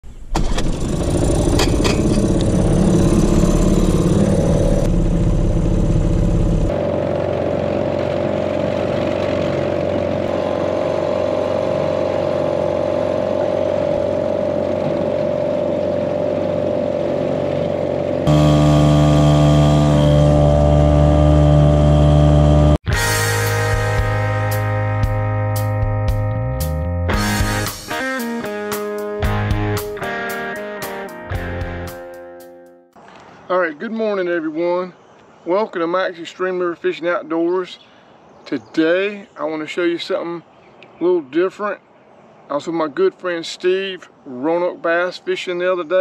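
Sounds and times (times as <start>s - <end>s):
outboard motor running: 0.3s - 24.6s
guitar music: 18.2s - 33.0s.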